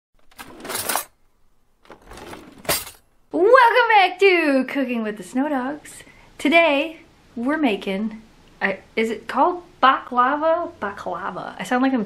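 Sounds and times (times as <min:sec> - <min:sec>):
metal cutlery clattering: 0:00.2 - 0:01.1, 0:01.8 - 0:03.0.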